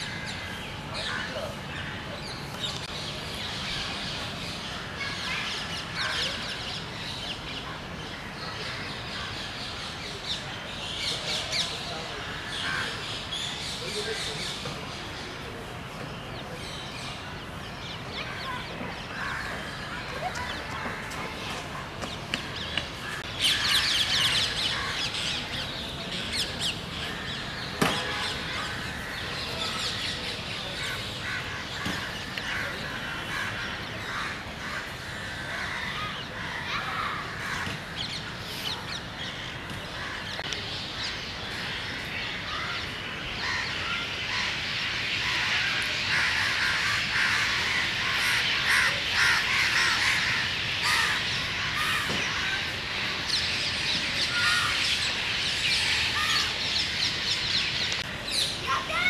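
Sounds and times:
chorus of birds calling: 0:00.0 - 0:59.0.

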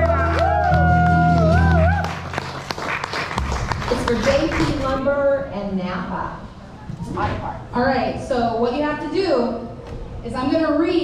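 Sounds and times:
acoustic guitar: 0:00.0 - 0:05.0
audience applauding: 0:00.0 - 0:05.0.

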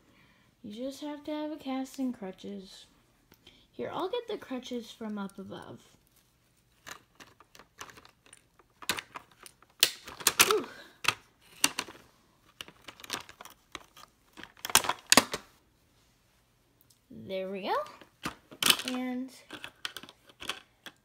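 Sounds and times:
plastic toys clattering: 0:06.8 - 0:15.5, 0:17.9 - 0:21.0
plastic toy pieces clicking: 0:06.9 - 0:11.9, 0:18.2 - 0:21.0.

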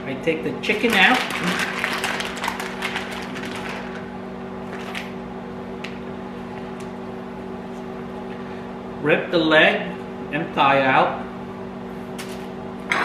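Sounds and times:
microwave oven humming: 0:00.0 - 0:13.0
plastic bag crinkling: 0:00.8 - 0:04.0.

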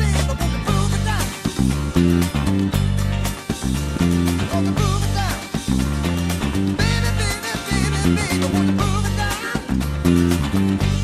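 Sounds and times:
electric bass groove: 0:00.0 - 0:11.0.

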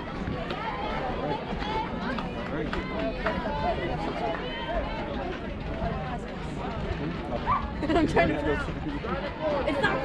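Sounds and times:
people calling out and chattering: 0:00.0 - 0:10.0.

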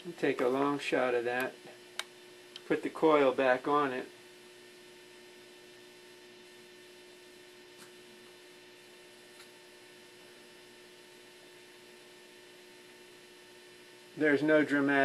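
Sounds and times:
electrical hum: 0:00.0 - 0:15.0.

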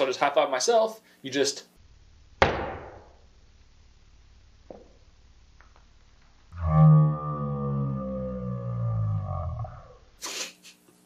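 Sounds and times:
distorted downward gliding tone: 0:06.6 - 0:10.0.

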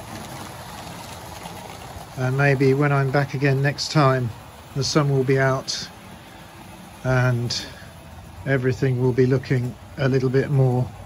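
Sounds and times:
model trains running on track: 0:00.0 - 0:11.0.

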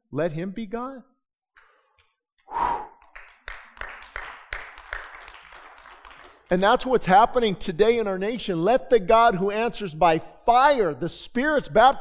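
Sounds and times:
breathy sounds: 0:01.6 - 0:03.1.

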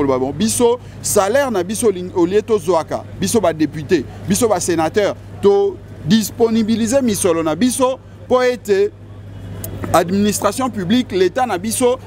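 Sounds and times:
man talking: 0:00.0 - 0:09.0, 0:09.6 - 0:12.0
road traffic rumble: 0:00.0 - 0:12.0.

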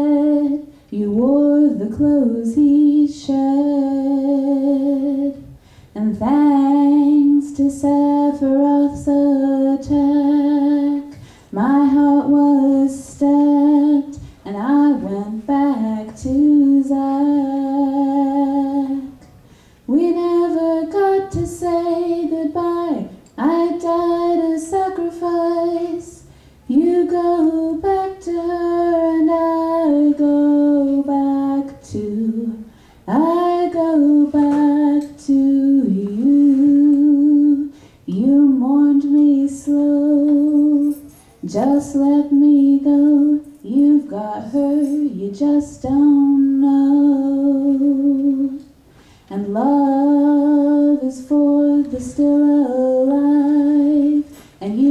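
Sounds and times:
woman singing slow song: 0:00.0 - 0:54.9.

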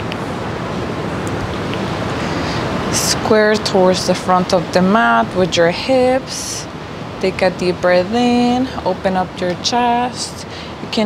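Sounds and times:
distant city noise: 0:00.0 - 0:11.0.

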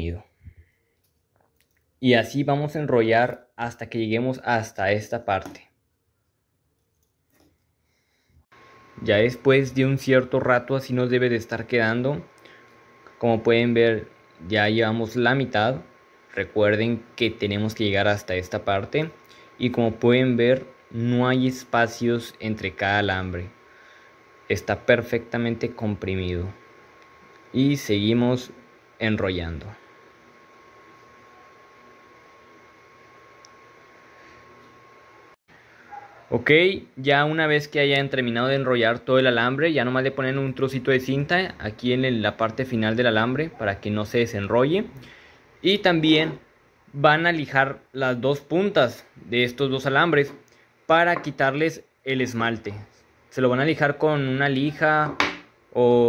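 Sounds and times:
thin steady whine: 0:06.8 - 0:56.0.

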